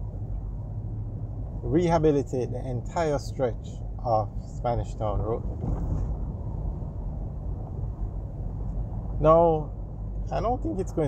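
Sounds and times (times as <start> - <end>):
car interior road rumble: 0.0 - 11.0.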